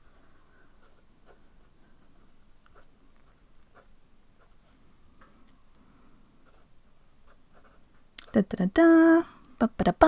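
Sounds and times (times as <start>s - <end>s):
pen writing on paper: 7.3s - 7.8s.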